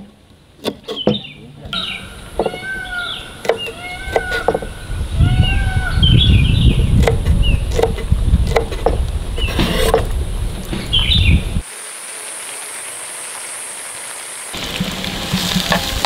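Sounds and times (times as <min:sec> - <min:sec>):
birds calling: 0:00.0 - 0:11.6
utensils knocking on wood: 0:03.4 - 0:04.7.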